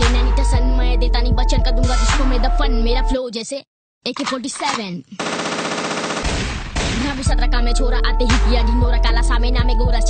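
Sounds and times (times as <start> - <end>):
machine-gun burst: 5.2 - 7.3.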